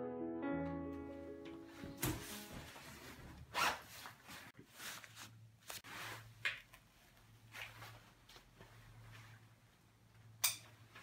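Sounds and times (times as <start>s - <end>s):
jacket zipper being pulled: 3.5s - 4.4s.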